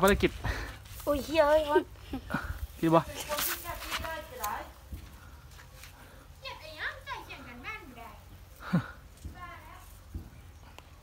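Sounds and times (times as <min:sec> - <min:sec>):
children talking and calling out: 0:01.0 - 0:02.4, 0:06.0 - 0:10.2.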